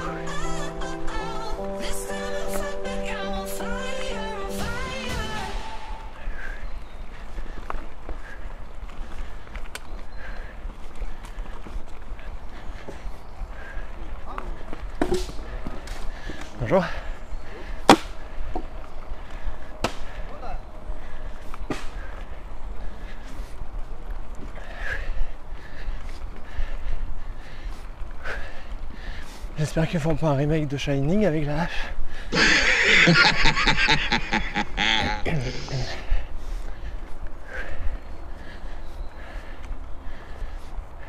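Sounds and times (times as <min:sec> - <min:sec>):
bike tyres rumbling on gravel: 0:06.4 - 0:20.2.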